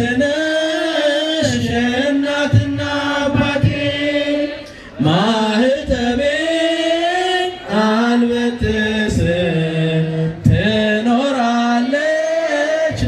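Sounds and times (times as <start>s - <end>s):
group of voices chanting a hymn: 0.0s - 13.0s.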